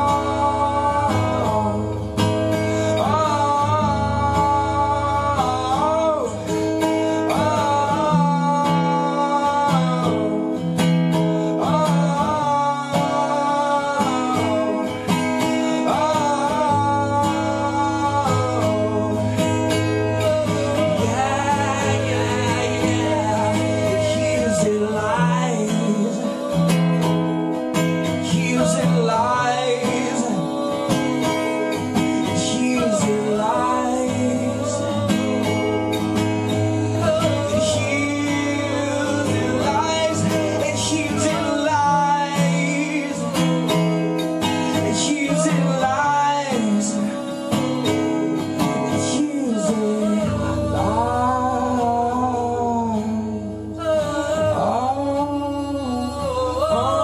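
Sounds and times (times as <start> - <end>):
men singing in harmony: 0.0 - 10.3, 11.4 - 57.0
acoustic guitars strummed: 0.0 - 57.0.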